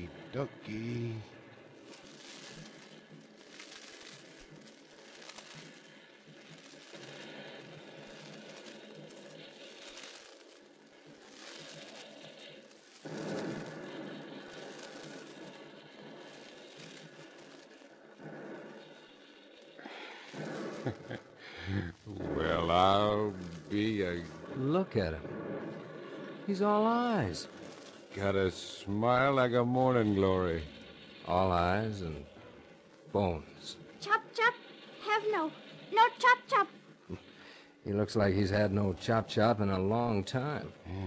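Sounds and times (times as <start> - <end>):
brush rustling and crackling: 0.0 - 41.0.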